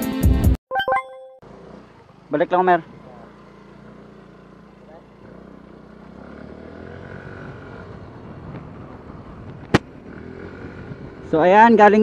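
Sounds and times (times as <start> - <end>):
road noise: 1.4 - 12.0
scooter engine: 1.4 - 12.0.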